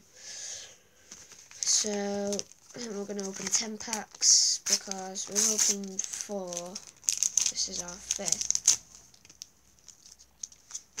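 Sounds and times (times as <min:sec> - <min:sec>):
wrapper crinkling: 0:01.1 - 0:11.0.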